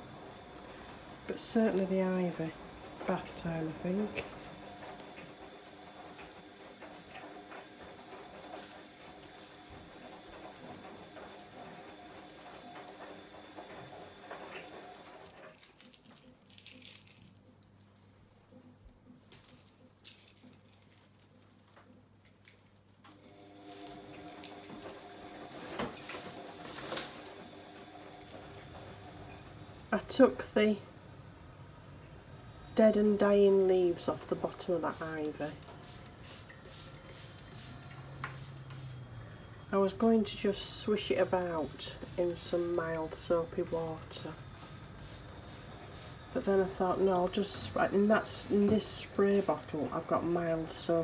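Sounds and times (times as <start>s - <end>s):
low background hum: 0.0s - 51.0s
leaves rustling: 14.2s - 18.4s, 23.3s - 29.3s.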